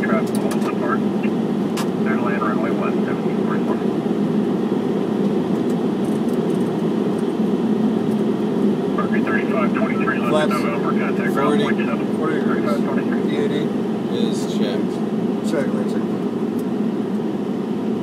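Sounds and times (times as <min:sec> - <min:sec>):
muffled voices: 0:00.0 - 0:04.3, 0:08.8 - 0:16.4
airflow and engine rush: 0:00.0 - 0:18.0.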